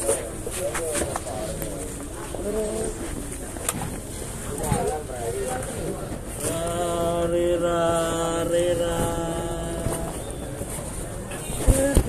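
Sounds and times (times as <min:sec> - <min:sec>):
man chanting: 0:06.4 - 0:10.3.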